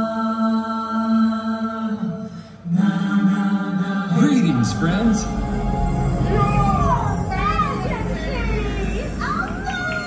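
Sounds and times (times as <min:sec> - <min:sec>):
voices singing: 0:00.0 - 0:10.0
stage show music: 0:04.1 - 0:10.0.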